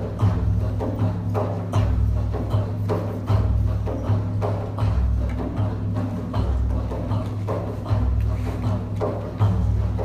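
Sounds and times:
hand drum booming strokes: 0.0s - 10.0s.

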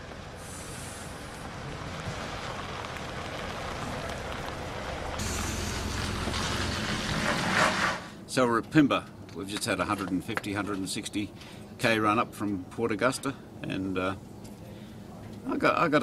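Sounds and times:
truck engine and tyres rumbling: 0.0s - 16.0s.

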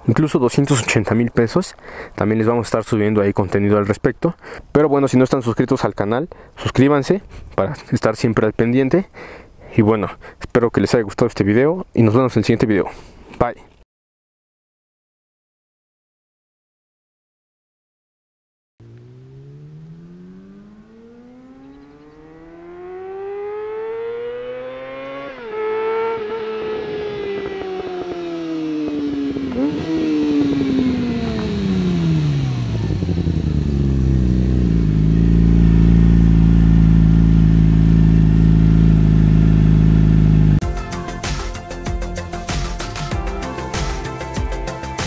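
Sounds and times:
motorcycle engine revving: 18.8s - 40.6s.

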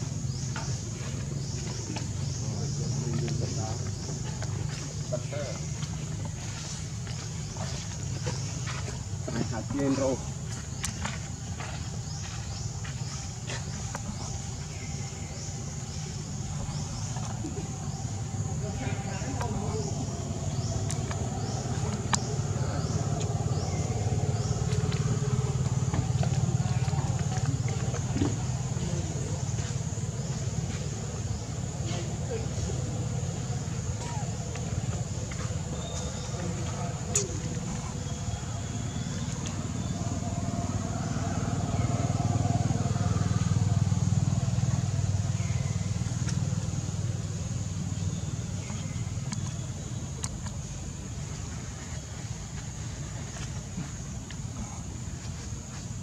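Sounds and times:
low motor rumble: 0.0s - 56.0s.

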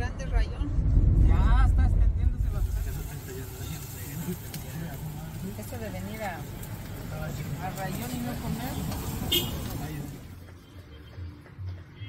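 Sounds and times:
steady low rumble: 0.0s - 7.8s.

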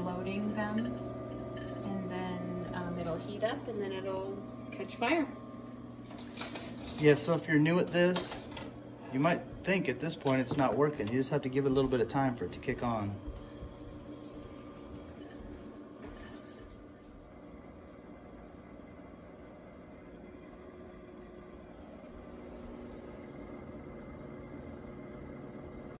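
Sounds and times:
pellet stove motor hum: 0.0s - 26.0s.

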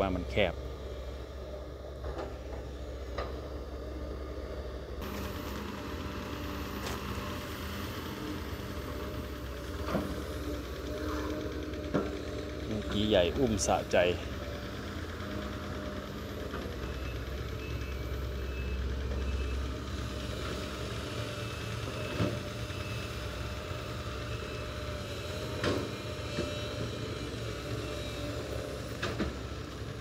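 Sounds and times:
excavator diesel engine running: 0.0s - 30.0s.

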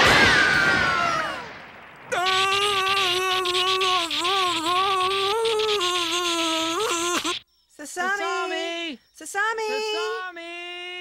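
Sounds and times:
man's long cartoon scream: 2.1s - 7.4s
shouting: 2.1s - 7.4s.

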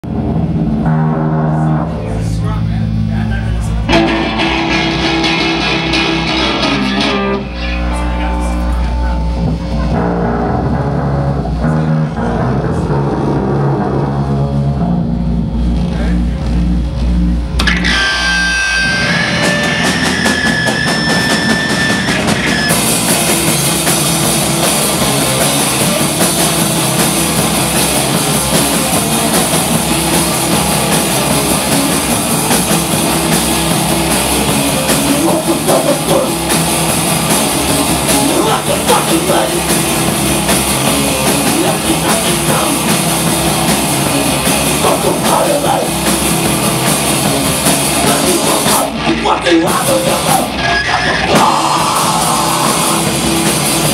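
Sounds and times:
live rock band playing: 0.0s - 53.9s
cymbals ringing: 3.9s - 10.3s.

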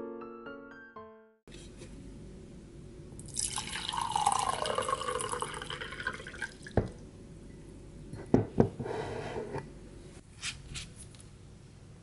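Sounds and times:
water poured into a glass mug: 3.3s - 6.8s.

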